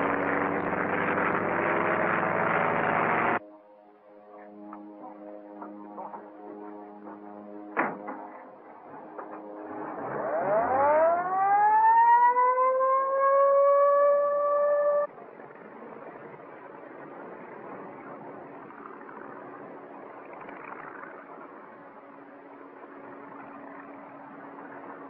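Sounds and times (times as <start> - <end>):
ambulance siren wailing: 6.0 - 15.1.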